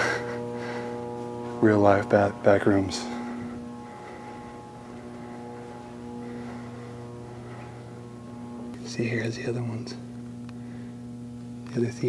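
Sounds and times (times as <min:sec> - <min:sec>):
held tones: 0:00.0 - 0:12.0
low hum: 0:00.0 - 0:12.0.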